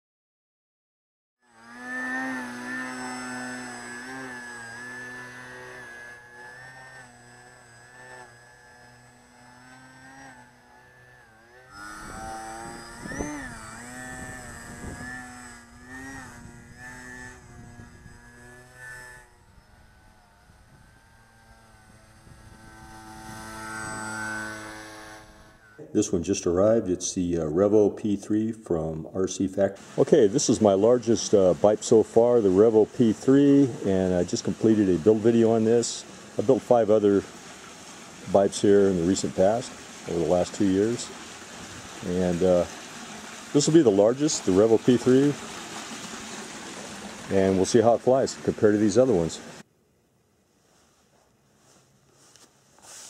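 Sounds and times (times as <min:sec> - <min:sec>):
electric motor and propeller whining: 0:01.4 - 0:26.7, 0:29.6 - 0:49.7.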